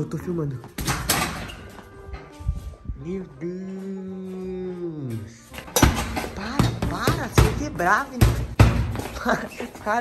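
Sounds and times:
hits on punching bag: 5.8s - 9.0s.

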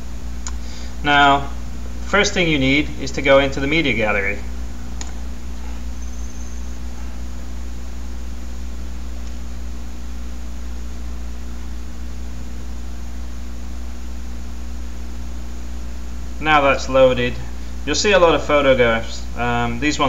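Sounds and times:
low hum: 0.0s - 20.0s.

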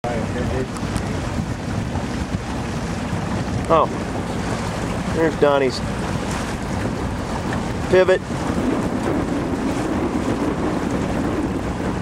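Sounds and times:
water noise from boat: 0.0s - 12.0s
wind buffeting microphone: 0.0s - 12.0s.

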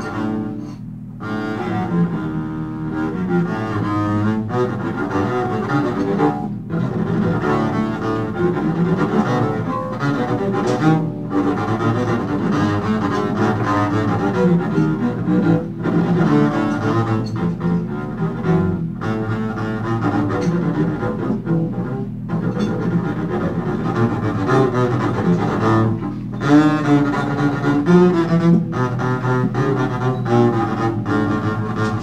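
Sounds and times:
double bass and saxophone jazz: 0.0s - 32.0s.

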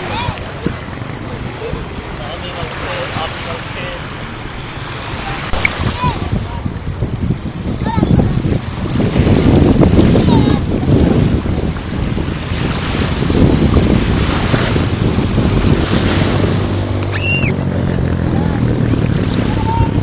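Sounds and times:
wind buffeting microphone: 0.0s - 20.0s
waves breaking on pebbles: 8.0s - 20.0s.

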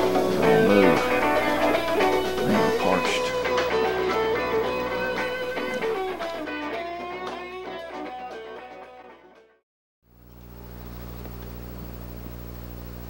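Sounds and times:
plucked guitar music: 0.0s - 9.4s.

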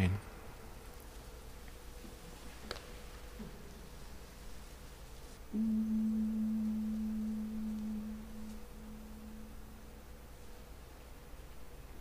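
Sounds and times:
pure pitch tone: 5.5s - 10.2s.

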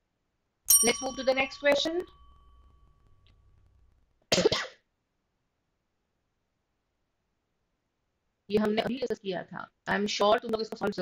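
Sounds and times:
woman coughing: 4.3s - 4.8s.

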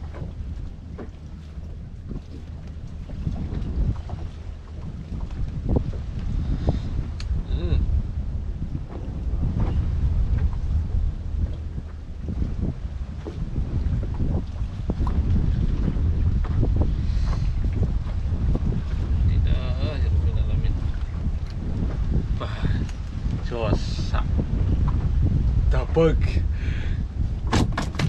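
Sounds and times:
clicks and knocks in wooden boat: 0.0s - 6.3s, 27.4s - 28.0s
wind buffeting microphone: 0.0s - 28.0s.

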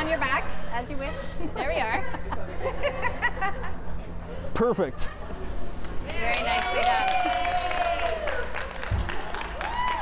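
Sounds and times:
people cheering woo: 6.2s - 10.0s.

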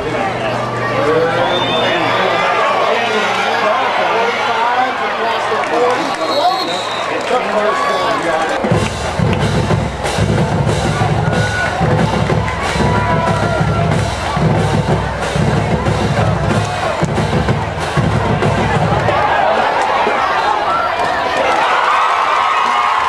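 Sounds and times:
crowd cheering and chatter: 0.0s - 23.0s
drums with heavy bass drum: 8.6s - 19.4s.

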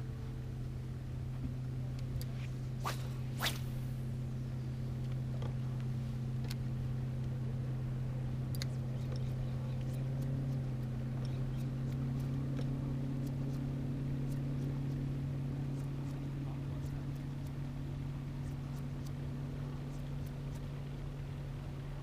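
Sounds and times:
faint light ticks: 1.4s - 2.4s, 5.0s - 6.6s, 8.5s - 15.1s, 15.7s - 17.7s, 18.4s - 19.2s, 19.9s - 20.7s.

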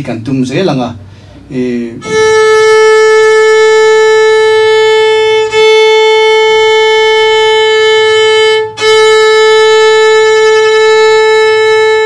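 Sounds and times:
violin bowed note: 1.9s - 12.0s.

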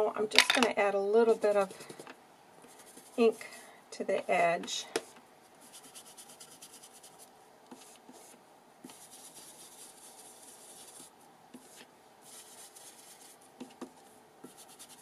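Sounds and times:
ink pad rubbing on paper: 2.7s - 3.5s, 5.6s - 7.2s, 7.8s - 13.4s, 14.4s - 15.0s.

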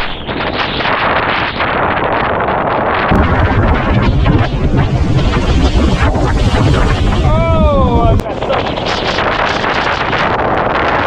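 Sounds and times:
surf washing against rocks: 0.0s - 11.0s
wind buffeting microphone: 0.0s - 11.0s.

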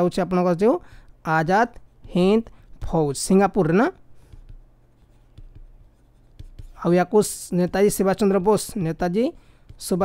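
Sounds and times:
stylus scratching on tablet: 0.6s - 10.0s.

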